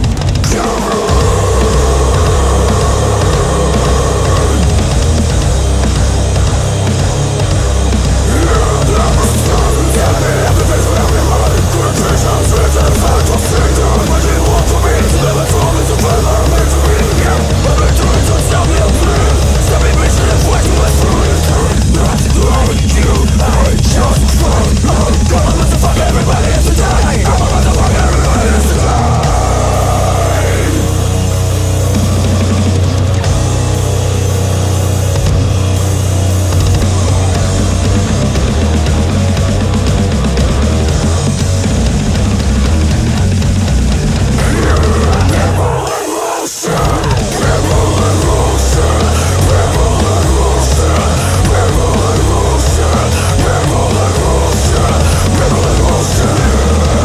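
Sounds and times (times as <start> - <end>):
heavy metal band playing: 0.0 - 57.0
heavy metal music: 0.0 - 57.0.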